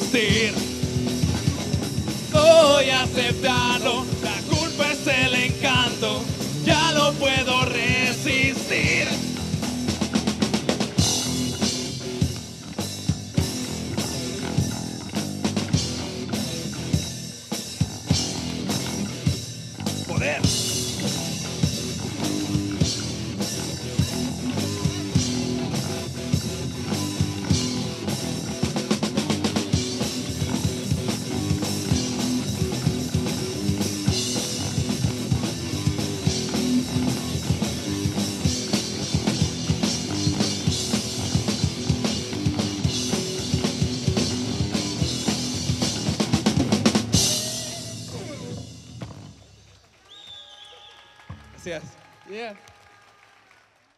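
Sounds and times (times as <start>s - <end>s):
drum kit beat: 0.0s - 49.4s
electric guitar: 0.0s - 49.5s
bass guitar: 0.0s - 49.7s.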